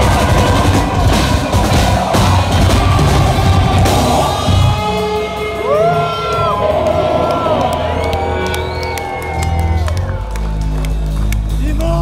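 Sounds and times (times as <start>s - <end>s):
rock band playing live: 0.0s - 11.9s.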